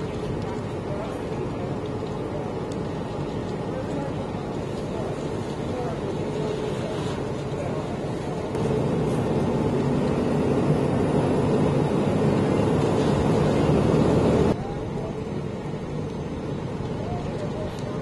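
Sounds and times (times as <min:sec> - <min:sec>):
fire engine running: 0:00.0 - 0:18.0.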